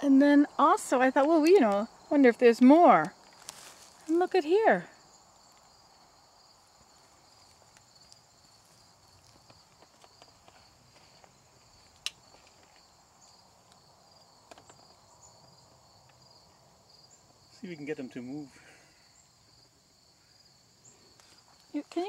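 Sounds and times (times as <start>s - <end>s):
insects chirping: 0.0s - 22.0s.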